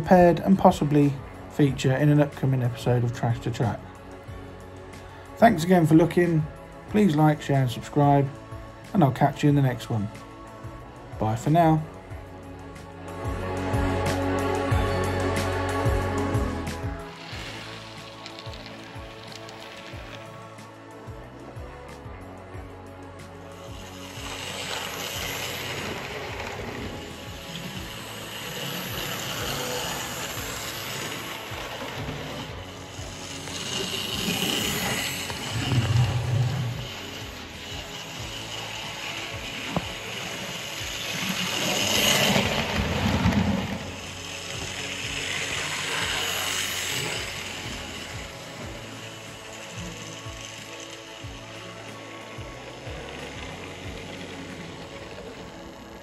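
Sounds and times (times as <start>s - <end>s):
model train whirr and clatter: 0.0s - 56.0s.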